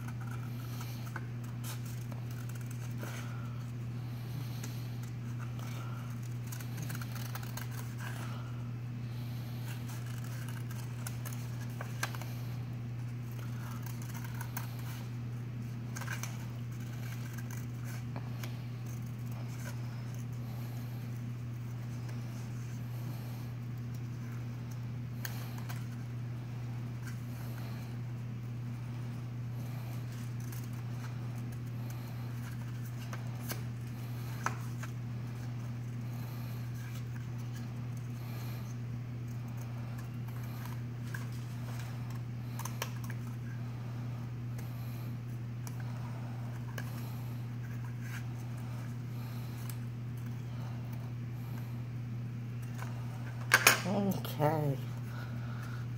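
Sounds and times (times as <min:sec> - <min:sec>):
steady low hum: 0:00.0 - 0:55.9
scissors snipping paper: 0:04.5 - 0:08.5, 0:09.7 - 0:12.4, 0:13.2 - 0:15.0, 0:15.9 - 0:20.2.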